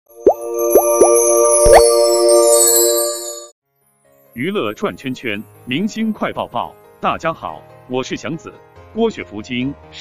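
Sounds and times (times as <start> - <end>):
held synth chord: 0.1 - 3.5.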